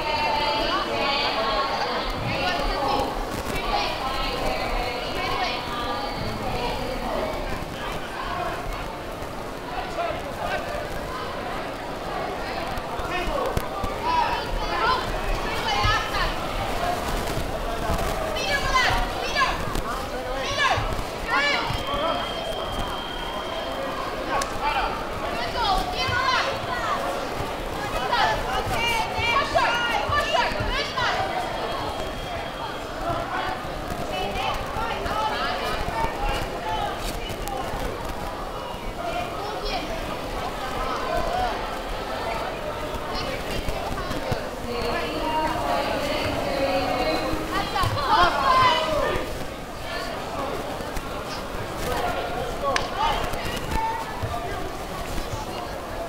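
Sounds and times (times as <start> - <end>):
indistinct voices: 0.0 - 56.0.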